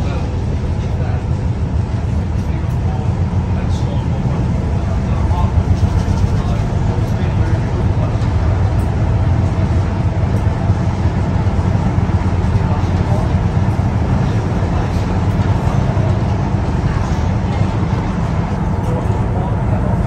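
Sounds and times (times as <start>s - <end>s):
train rumbling: 0.0s - 20.0s.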